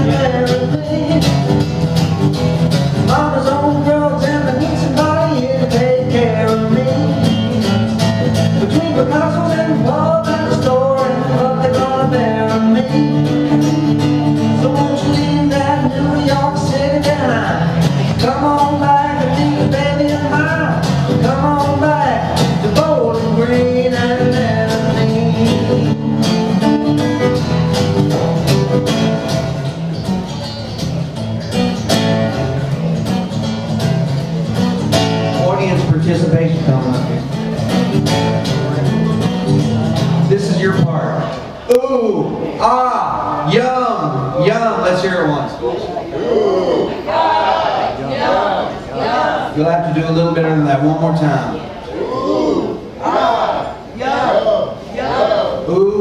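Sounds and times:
man singing: 0.0 - 1.8, 3.0 - 26.6, 35.3 - 37.3
acoustic guitar strumming: 0.0 - 45.6.

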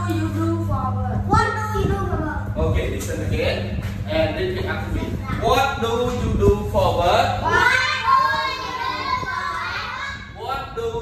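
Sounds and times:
children talking: 0.0 - 2.6, 4.2 - 6.0, 7.4 - 10.5.

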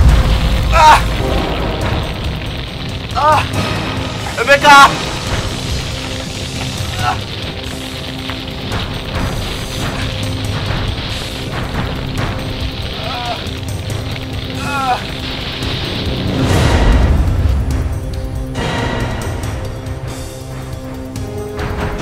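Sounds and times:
musical drone: 0.0 - 22.0.

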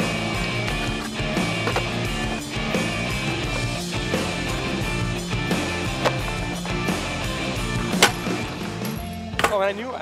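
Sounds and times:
rock music: 0.0 - 9.8
skateboard clacking on concrete: 0.6 - 2.4, 5.9 - 6.8.

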